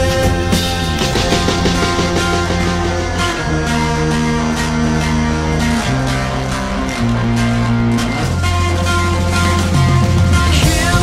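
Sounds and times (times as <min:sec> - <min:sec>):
rock guitar chords: 0:00.0 - 0:11.0
steady low bass: 0:00.0 - 0:11.0.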